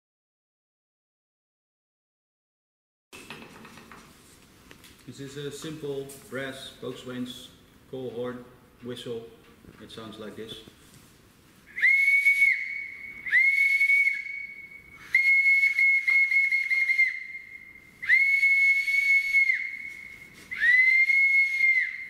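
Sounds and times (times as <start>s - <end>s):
shrill boatswain's pipe notes: 11.7s - 22.0s.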